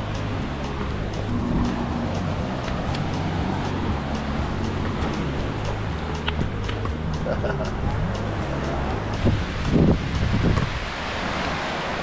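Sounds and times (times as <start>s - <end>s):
wind buffeting microphone: 0.0s - 12.0s
small waves breaking: 8.5s - 12.0s.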